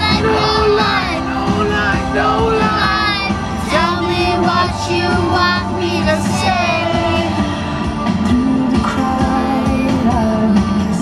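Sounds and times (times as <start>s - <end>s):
pop song on car stereo: 0.0s - 11.0s.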